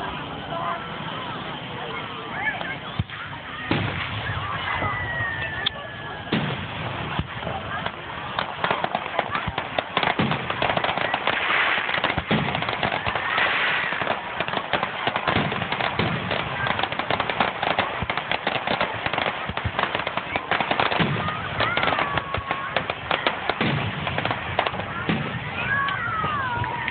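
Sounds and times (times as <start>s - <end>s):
fireworks bursting and crackling: 0.0s - 26.9s.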